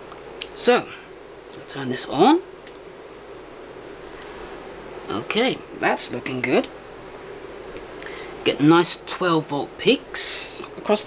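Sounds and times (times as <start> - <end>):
microphone hiss: 0.0 - 11.0.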